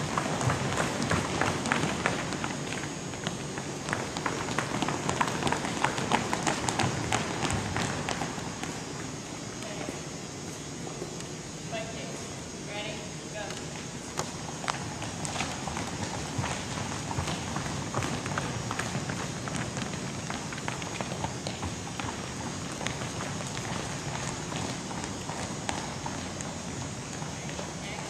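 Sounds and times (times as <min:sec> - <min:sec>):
footsteps jogging on wooden floor: 0:00.0 - 0:08.9, 0:14.2 - 0:27.8.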